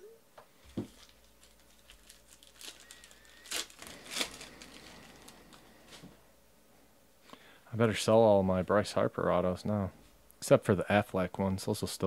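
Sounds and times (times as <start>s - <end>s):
wrapper tearing and crinkling: 0.7s - 5.8s.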